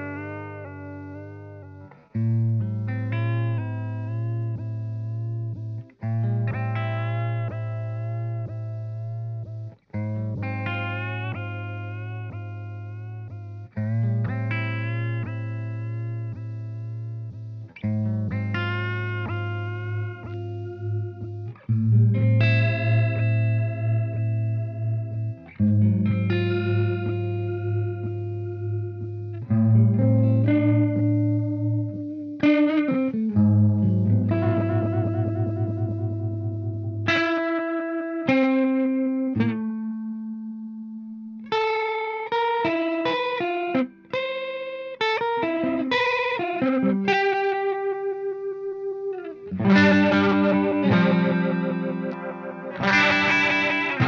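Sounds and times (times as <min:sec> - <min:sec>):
electric guitars with wobbling chorus: 0:00.0 - 0:54.0.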